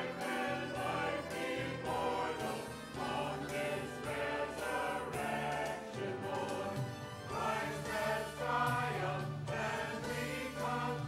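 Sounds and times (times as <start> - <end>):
choir singing: 0.0 - 11.0.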